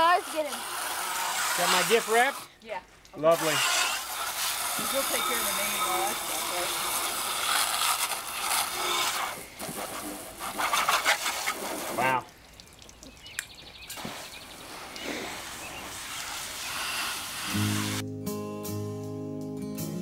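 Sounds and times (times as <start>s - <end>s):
hose spraying water on car: 0.0s - 12.2s, 13.9s - 18.0s
acoustic guitar music: 17.5s - 20.0s.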